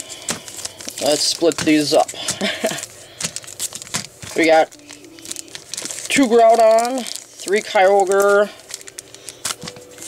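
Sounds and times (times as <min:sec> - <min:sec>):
foil wrappers crinkling: 0:00.0 - 0:10.0
person laughing: 0:02.2 - 0:02.9.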